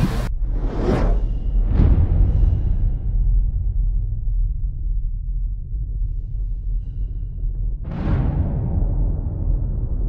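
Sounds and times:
deep low rumble: 0:00.0 - 0:10.0.

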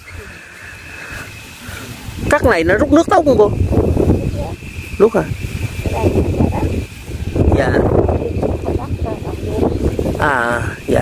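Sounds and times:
wind rumble on microphone: 0:01.3 - 0:11.0.

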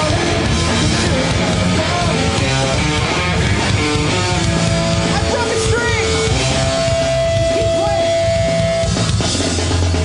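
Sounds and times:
bass guitar: 0:00.0 - 0:10.0
drums: 0:00.0 - 0:10.0
electric guitar: 0:00.0 - 0:10.0.

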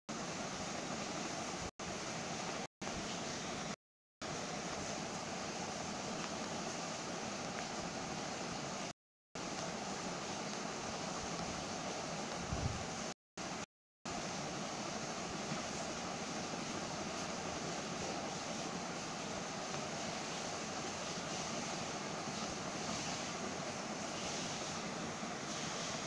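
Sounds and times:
steady hiss: 0:00.1 - 0:26.0.

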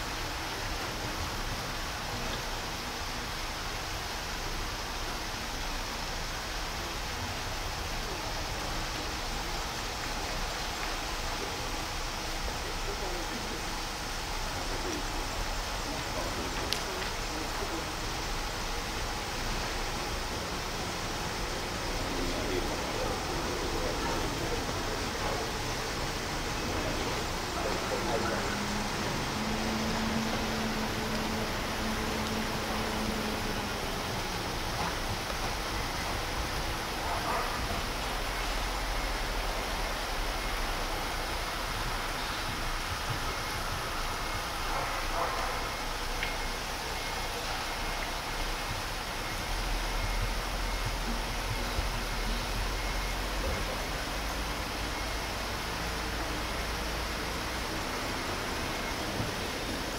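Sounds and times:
steady background hiss: 0:00.0 - 0:59.9.

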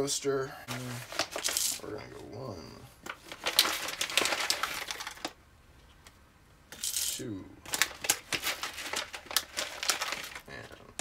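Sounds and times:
coffee beans clattering: 0:01.2 - 0:01.8, 0:06.7 - 0:10.5.

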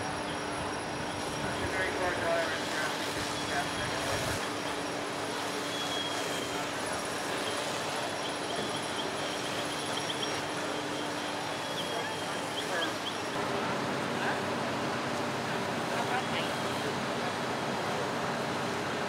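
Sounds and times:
hose spraying water: 0:00.0 - 0:13.4
fire engine pumps droning: 0:00.0 - 0:19.0.

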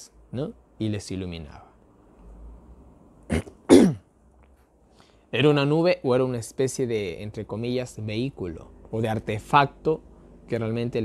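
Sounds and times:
man clearing his throat: 0:03.3 - 0:04.1.

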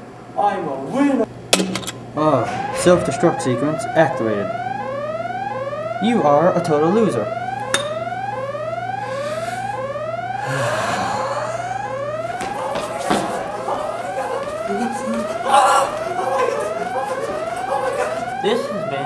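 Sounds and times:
whooping alarm siren: 0:02.2 - 0:19.0.

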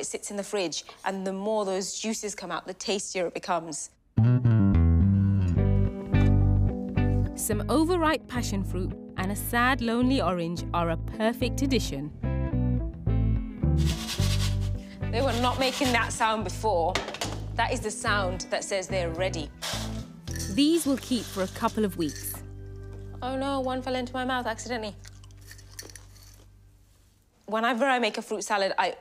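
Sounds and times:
background music with bass: 0:04.2 - 0:18.4
person crunching bread chip: 0:25.0 - 0:26.5.

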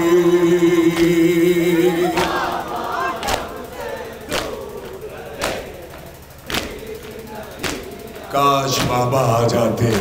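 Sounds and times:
crowd voices calling out: 0:01.1 - 0:09.1
hands striking chests in unison: 0:04.3 - 0:04.6, 0:06.5 - 0:08.0.

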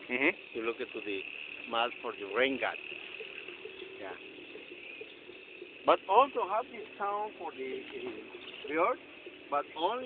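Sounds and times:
steady high-pitched drone: 0:00.0 - 0:10.0.

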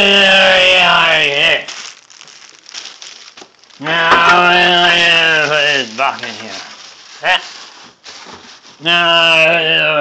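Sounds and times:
plastic bag crinkling: 0:01.4 - 0:09.1.

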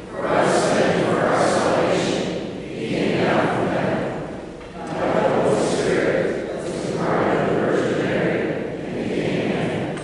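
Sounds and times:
congregation praying in unison: 0:00.0 - 0:10.0.

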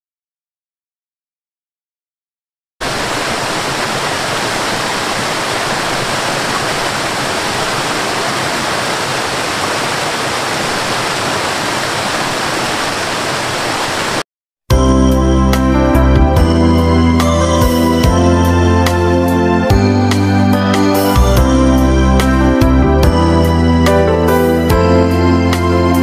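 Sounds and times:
waterfall rushing: 0:02.8 - 0:14.2.

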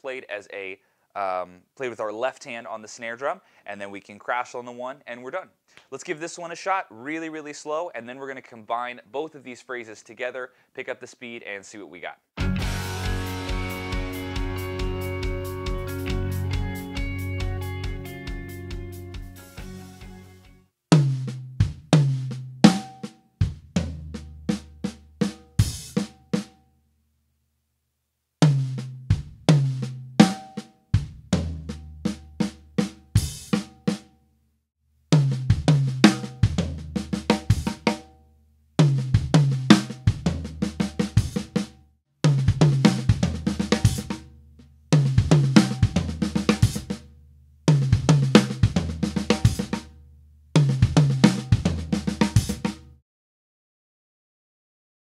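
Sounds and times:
crash cymbal: 0:12.4 - 0:15.7
tom drum fill: 0:12.4 - 0:16.7, 0:35.2 - 0:38.0, 0:42.3 - 0:44.2, 0:45.0 - 0:47.0, 0:47.7 - 0:49.8, 0:50.6 - 0:52.8.

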